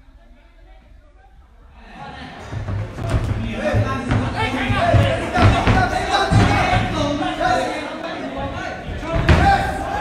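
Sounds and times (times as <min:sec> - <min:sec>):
spectators shouting and talking: 0:01.7 - 0:10.0.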